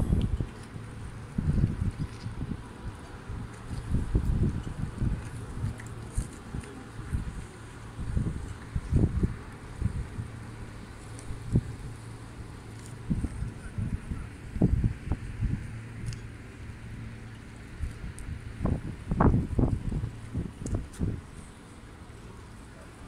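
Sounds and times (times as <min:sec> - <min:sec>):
wind gusts on microphone: 0:00.0 - 0:17.0, 0:17.7 - 0:21.6.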